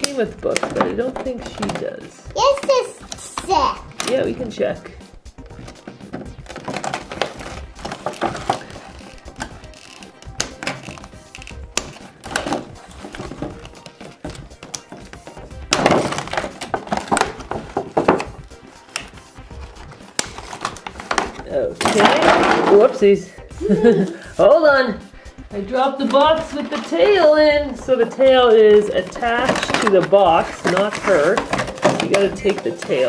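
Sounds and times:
background music: 0.0s - 33.0s
plastic packaging crackling: 6.4s - 13.8s, 15.7s - 22.5s, 28.9s - 33.0s.

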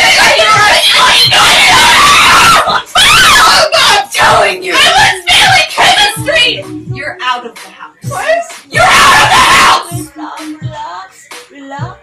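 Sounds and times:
women screaming in argument: 0.0s - 6.0s, 8.1s - 9.9s.

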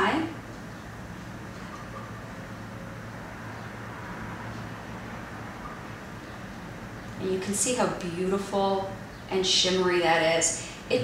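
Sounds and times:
low hum with faint hiss: 0.0s - 11.0s.

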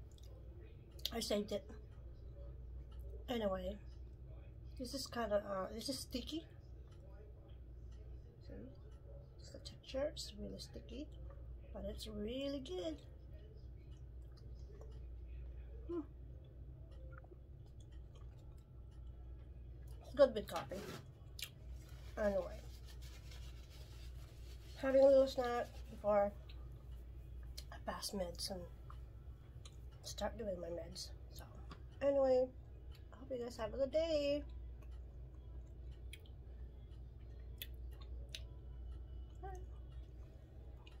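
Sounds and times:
chewing sticky rice cake: 0.0s - 1.1s, 13.0s - 27.8s, 28.7s - 30.2s, 34.4s - 41.0s
steady low hum: 0.0s - 41.0s.

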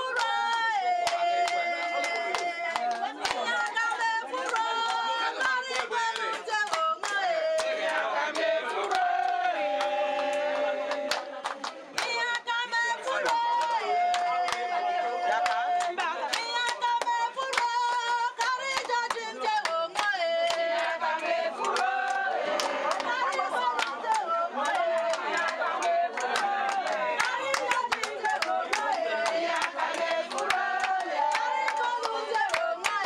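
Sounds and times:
rhythmic hand clapping: 0.0s - 33.0s
women singing together: 0.0s - 33.0s.

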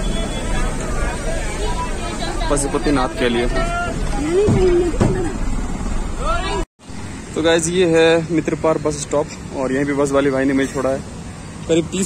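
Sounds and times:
passengers chattering: 0.0s - 6.6s
bus rumbling: 0.0s - 12.0s.

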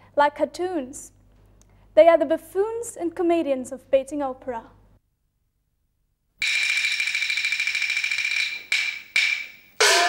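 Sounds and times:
gongs and cymbals rattling roll: 6.4s - 10.0s
percussion strikes: 6.4s - 10.0s.

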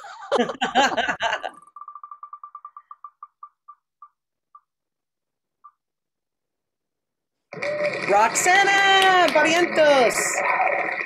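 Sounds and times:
spinner ticking clicks: 1.5s - 4.7s.

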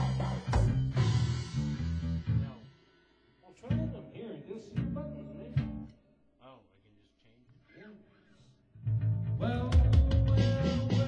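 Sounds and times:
band with electric guitar and drums: 0.0s - 3.0s, 9.0s - 11.0s.

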